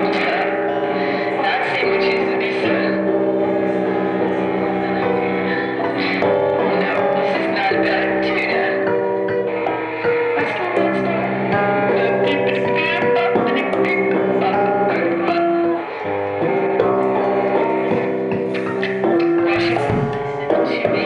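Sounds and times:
ringing electric guitar tones: 0.0s - 21.0s.

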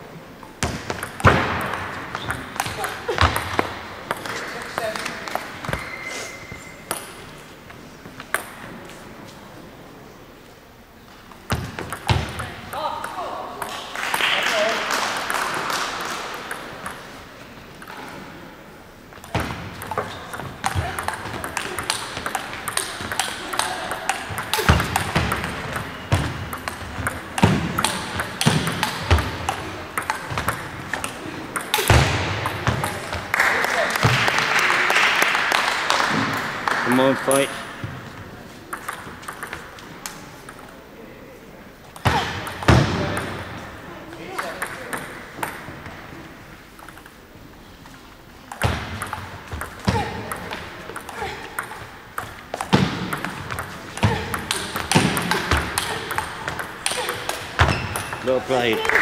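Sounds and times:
sports hall noise: 0.0s - 59.0s
table tennis ball clicking: 19.2s - 33.2s, 38.7s - 40.8s, 44.3s - 45.6s, 48.5s - 59.0s.

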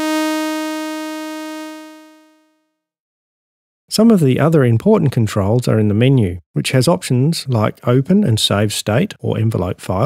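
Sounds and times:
bright synthesizer note: 0.0s - 2.5s.

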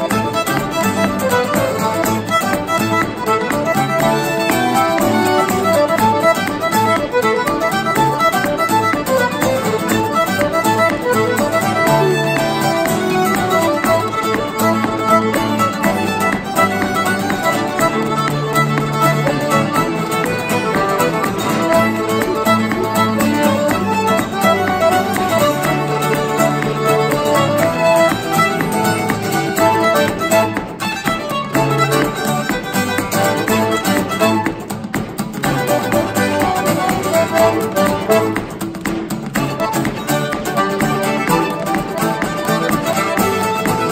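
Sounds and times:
piano accordion: 0.0s - 34.6s, 35.4s - 43.9s
fiddle melody: 0.0s - 43.9s
strummed acoustic guitar: 0.0s - 43.9s.

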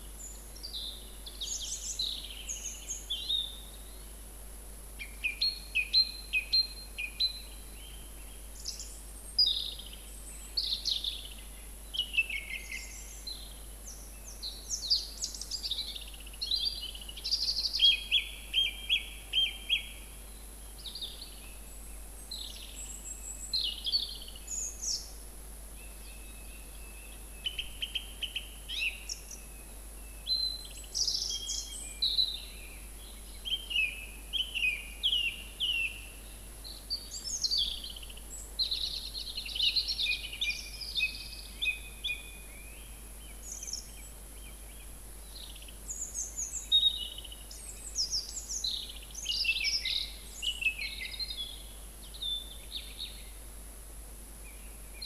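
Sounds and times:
song thrush singing: 0.0s - 4.2s, 5.0s - 53.6s.

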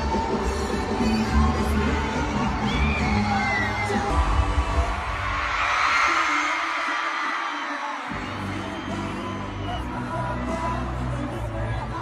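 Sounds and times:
concert music over sound system: 0.0s - 12.0s
crowd cheering: 0.0s - 12.0s.

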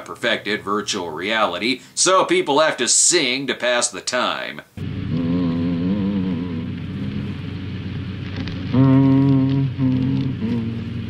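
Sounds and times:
old film soundtrack hum and hiss: 0.0s - 11.0s
man singing in low voice: 5.2s - 7.3s, 8.7s - 11.0s.

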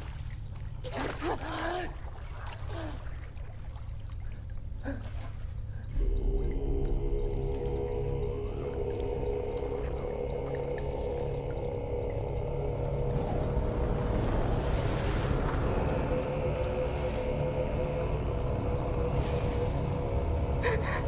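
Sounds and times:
deep rumble: 5.8s - 21.0s
eerie held tones: 5.9s - 21.0s.

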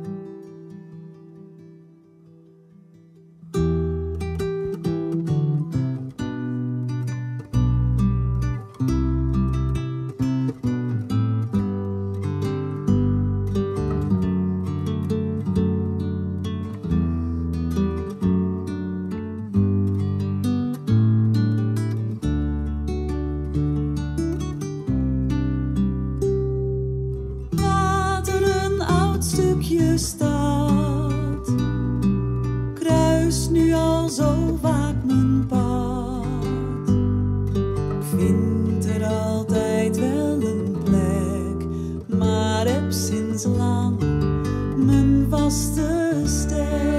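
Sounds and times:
classical guitar picking: 0.0s - 46.9s
woman singing: 27.5s - 32.0s, 32.7s - 37.2s, 38.0s - 46.9s.

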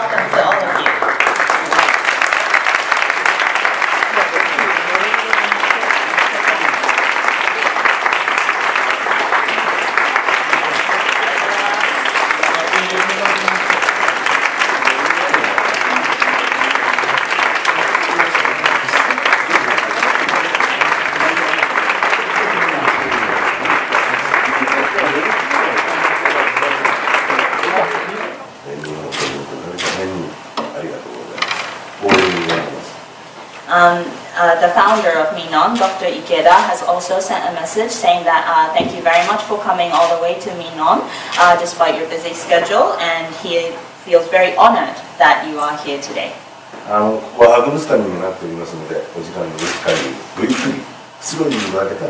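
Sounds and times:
voices: 0.0s - 2.0s, 9.3s - 33.1s, 33.7s - 52.0s
crowd applauding: 0.0s - 30.3s, 49.4s - 51.9s.

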